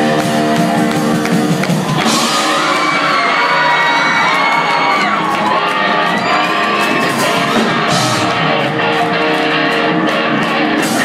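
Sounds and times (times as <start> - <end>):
crowd shouting and whooping: 0.0 - 11.0
live rock band: 0.0 - 11.0.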